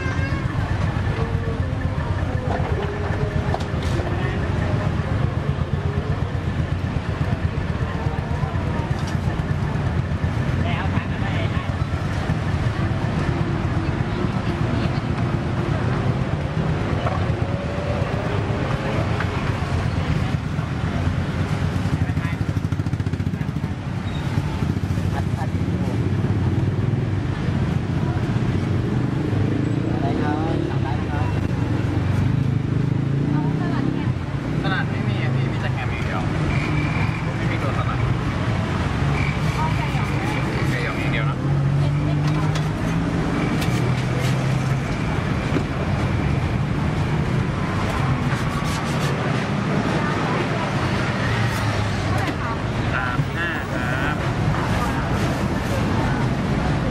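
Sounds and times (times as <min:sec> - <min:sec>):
indistinct chatter: 0:00.0 - 0:56.9
motorbikes and cars passing: 0:00.0 - 0:56.9.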